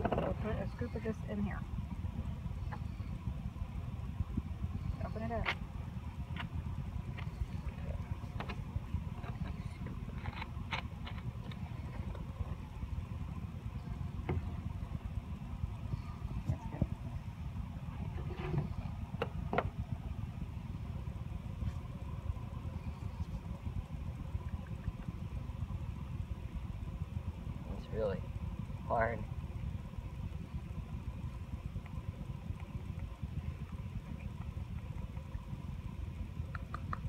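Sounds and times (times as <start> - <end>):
wind rumbling on microphone: 0.0 - 37.0
faint clicks and rustles: 4.7 - 17.2, 29.6 - 37.0.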